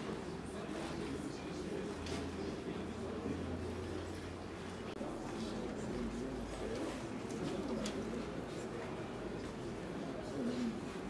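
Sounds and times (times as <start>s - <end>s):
distant voice speaking quietly: 0.0s - 11.0s.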